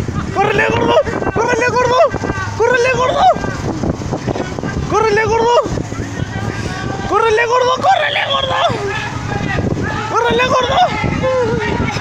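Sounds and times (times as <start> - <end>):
outdoor rumble: 0.0 - 12.0
wind on microphone: 0.0 - 12.0
voices yelling high-pitched: 0.2 - 3.8, 4.4 - 12.0.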